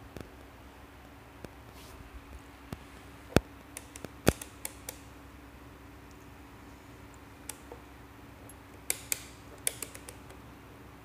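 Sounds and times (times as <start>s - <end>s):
faint electrical hum: 0.0s - 11.0s
plastic knobs clicking: 8.5s - 10.4s.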